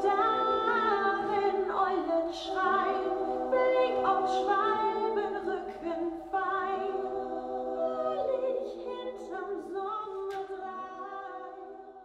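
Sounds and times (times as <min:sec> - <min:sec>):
a cappella choir singing: 0:00.0 - 0:12.0.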